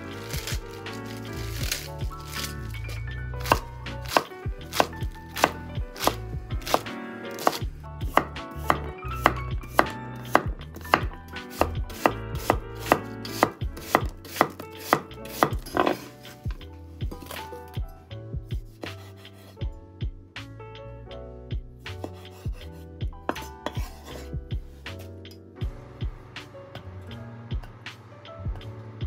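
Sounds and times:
knife chopping on wooden board: 0.2 - 17.7, 18.7 - 19.5, 22.0 - 22.7, 23.3 - 24.3.

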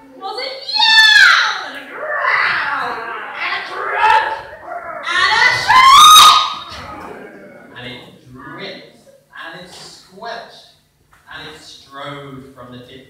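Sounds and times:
people shrieking and yelling: 0.6 - 8.5.

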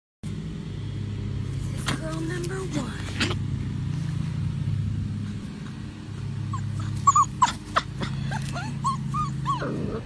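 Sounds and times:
steady low hum: 0.2 - 10.0
puppy whimpering yips: 6.5 - 10.0.

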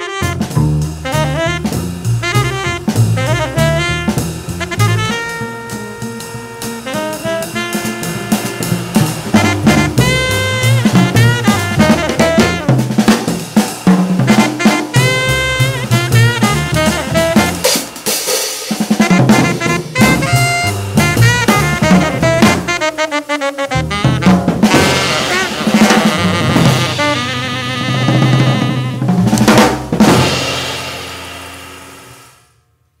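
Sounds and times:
saxophone: 0.0 - 13.2, 14.2 - 18.0, 18.9 - 29.6
upright bass: 0.0 - 13.6, 14.2 - 17.8, 19.1 - 32.0
drum kit playing: 0.0 - 32.5.

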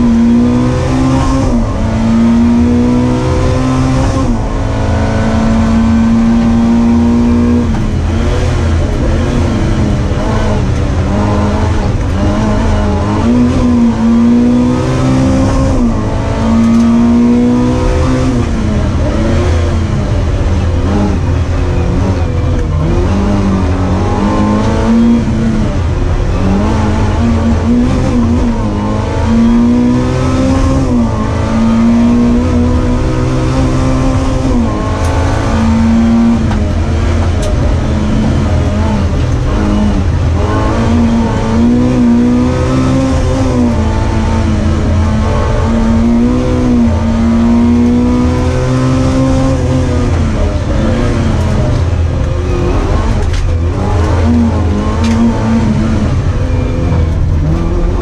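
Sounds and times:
racing car engine revving: 0.0 - 58.0.

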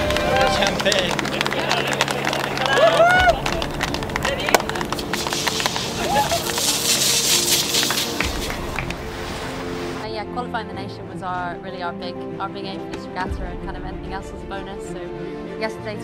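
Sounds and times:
people shouting and whooping: 0.0 - 7.0
background music: 0.0 - 16.0
sparkling wine spraying: 4.8 - 10.0
laughter: 6.0 - 6.9.

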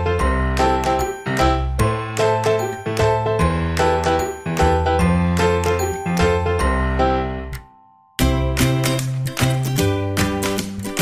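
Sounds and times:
light children's tune: 0.0 - 11.0.

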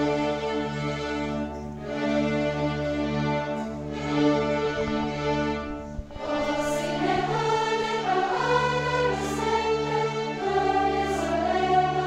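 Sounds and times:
string orchestra: 0.0 - 12.0
youth choir singing: 6.1 - 12.0.

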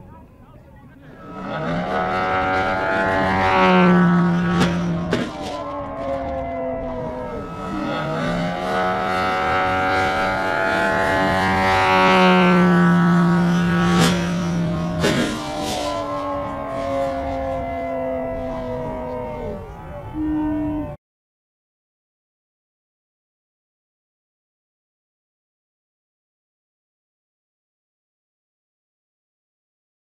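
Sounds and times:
plane hitting the ground: 0.0 - 21.0
model plane engine revving: 1.0 - 20.8.

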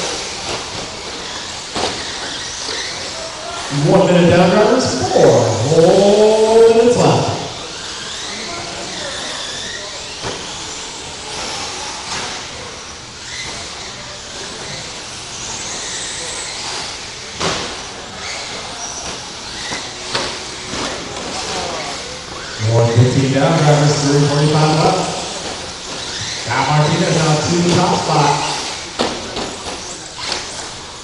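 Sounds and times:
toy car motors whining: 0.0 - 3.9, 5.2 - 31.0.

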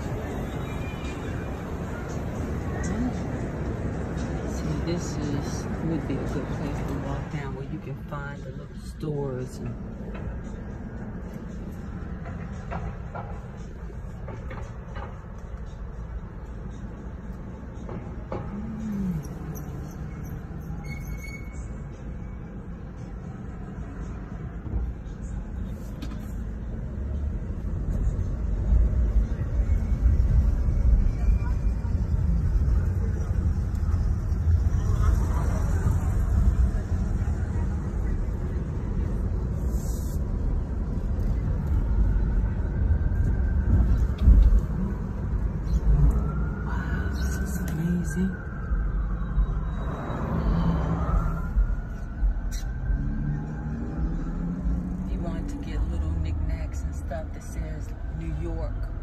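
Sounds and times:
city traffic: 0.0 - 59.0
engine and tyre rumble: 0.0 - 59.0.

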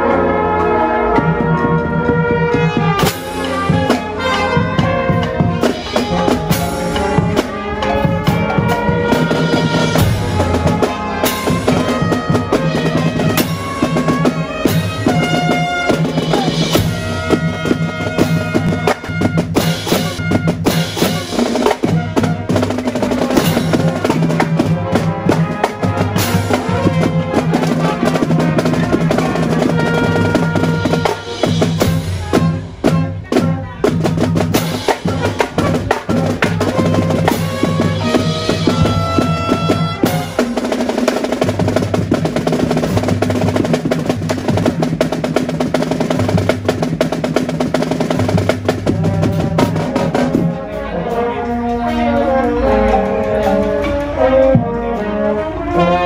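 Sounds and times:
brass playing: 0.0 - 56.0
snare drums: 0.0 - 56.0
bass drums: 0.8 - 55.0.

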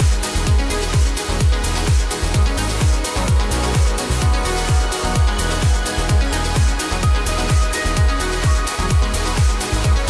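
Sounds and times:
house dance music: 0.0 - 10.0.

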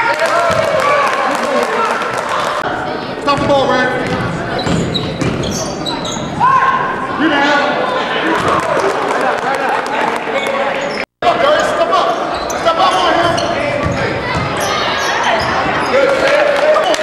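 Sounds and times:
people shouting in a hall: 0.0 - 2.7, 6.3 - 17.0
basketball bouncing on hardwood: 3.4 - 5.5.

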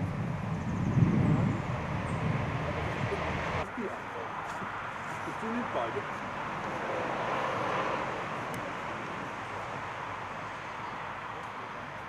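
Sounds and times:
vehicle passing: 0.0 - 11.7
distant road traffic hiss: 0.0 - 12.0.

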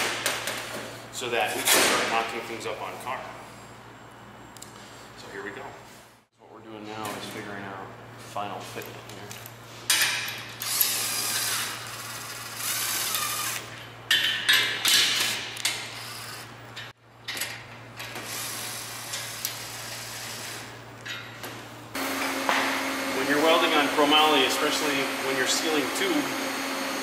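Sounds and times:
cordless drill whining: 10.6 - 13.7
man talking: 23.1 - 26.4.

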